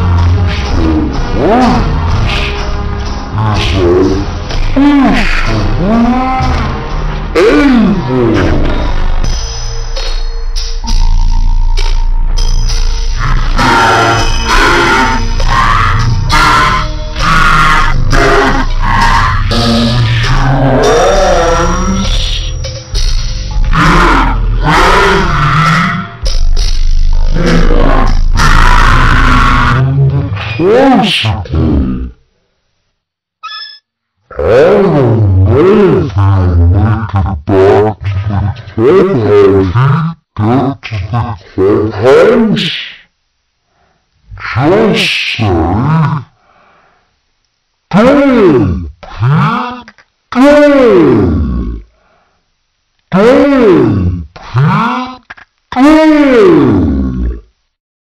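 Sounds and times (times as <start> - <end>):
distorted deep voice: 0.0 - 9.3, 13.2 - 22.7, 23.5 - 32.2, 34.3 - 43.1, 44.2 - 46.4, 47.9 - 51.9, 53.1 - 57.6
distorted music: 0.0 - 32.2, 34.3 - 43.1.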